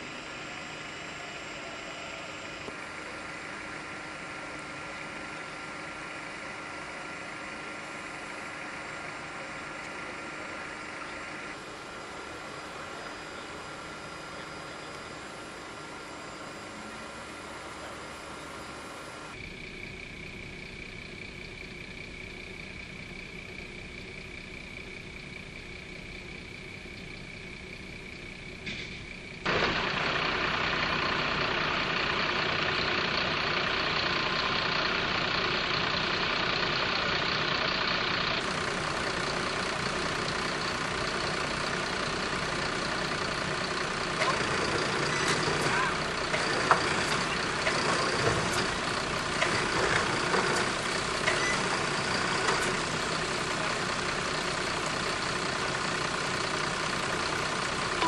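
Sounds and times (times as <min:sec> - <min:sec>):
tow truck engine running: 0:00.0 - 0:58.0.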